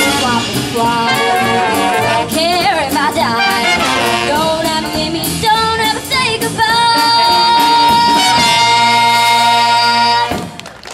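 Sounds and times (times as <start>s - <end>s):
saxophones: 0.0s - 5.2s, 7.1s - 10.4s
girl singing: 0.0s - 10.2s
trombone: 0.0s - 10.6s
drums: 0.0s - 10.9s
jazz band playing: 0.0s - 10.9s.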